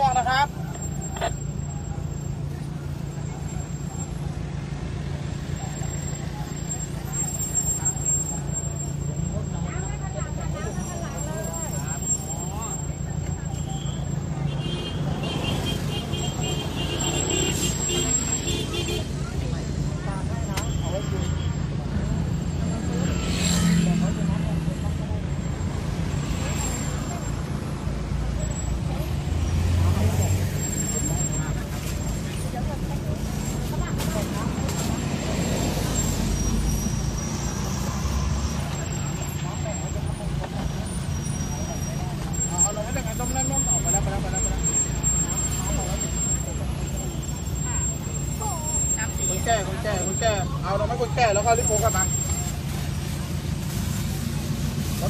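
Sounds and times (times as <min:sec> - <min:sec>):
people's voices: 0:00.0 - 0:55.0
vehicle engine humming: 0:00.0 - 0:55.0.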